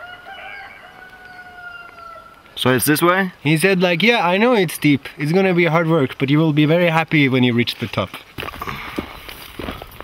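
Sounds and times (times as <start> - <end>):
rooster crowing: 0.0 - 2.4.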